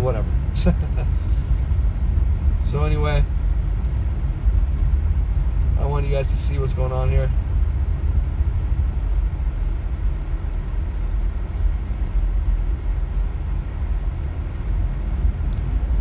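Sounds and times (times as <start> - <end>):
car engine and tyre rumble: 0.0 - 16.0.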